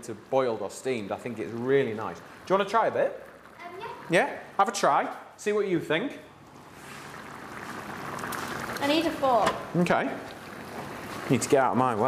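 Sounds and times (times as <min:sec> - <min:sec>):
sauce simmering in a pan: 0:00.0 - 0:05.0, 0:06.4 - 0:12.0.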